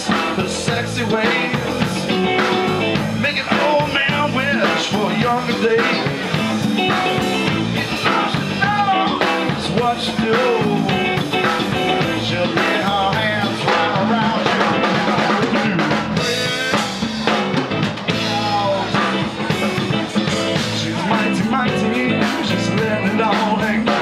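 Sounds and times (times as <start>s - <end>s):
drum kit: 0.0s - 24.0s
electric bass: 0.0s - 24.0s
electric guitar lead: 0.0s - 24.0s.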